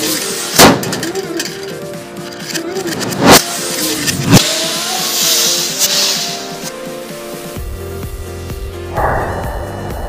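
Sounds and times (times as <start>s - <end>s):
hiss: 0.0s - 1.6s, 3.2s - 7.8s
firecrackers banging: 0.0s - 7.1s
background music: 0.0s - 10.0s.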